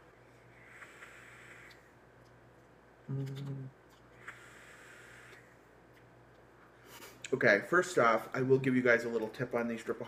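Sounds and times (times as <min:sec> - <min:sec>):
vape draw hiss: 0:00.5 - 0:01.8, 0:04.2 - 0:05.5.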